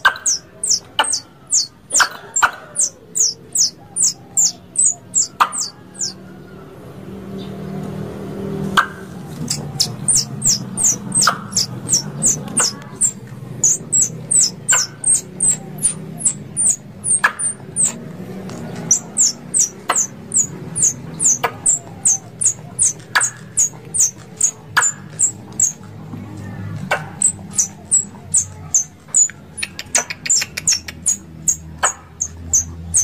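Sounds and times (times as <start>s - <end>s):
squirrel high chirps: 0.0s - 6.2s, 8.8s - 25.9s, 26.8s - 33.0s
squirrel sharp click: 26.8s - 32.4s.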